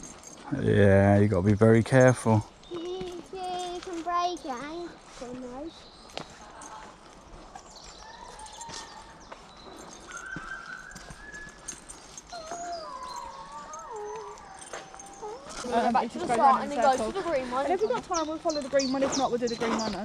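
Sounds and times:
child howling like a wolf: 0:08.0 - 0:09.2, 0:10.1 - 0:11.7, 0:12.3 - 0:16.4.

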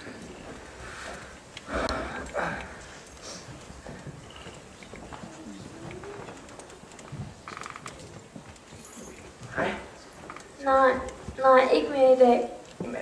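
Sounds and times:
breathy sound: 0:00.8 - 0:03.6.

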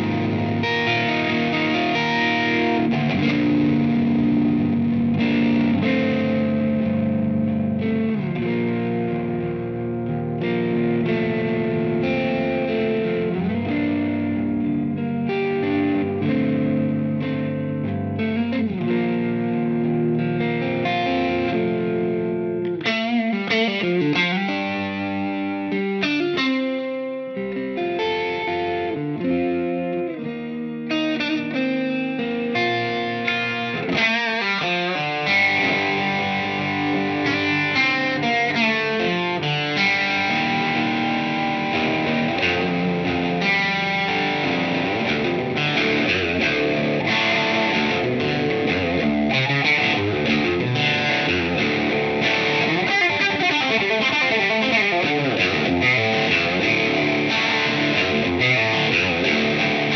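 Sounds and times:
electric guitar through amplifier: 0:00.0 - 0:59.9.

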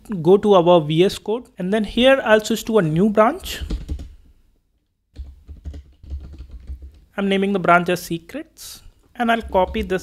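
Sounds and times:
computer keyboard typing: 0:03.6 - 0:04.1, 0:05.2 - 0:07.1.

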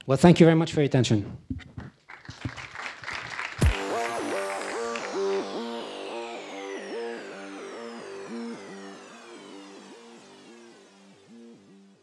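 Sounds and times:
audience clapping: 0:01.8 - 0:07.2
electronic music with pulsing synth: 0:03.6 - 0:12.0.

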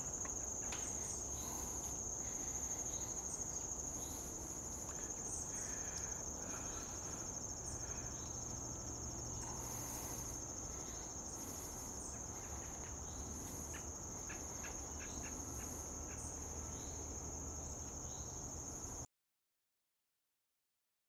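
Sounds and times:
insects trilling: 0:00.0 - 0:19.0.

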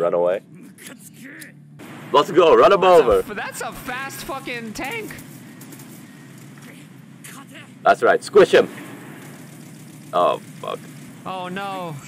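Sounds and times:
steady rushing noise: 0:01.8 - 0:12.0.

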